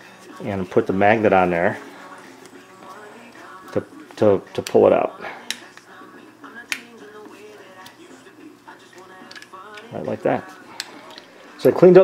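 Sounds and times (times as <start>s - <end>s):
faint background music: 0.0s - 12.0s.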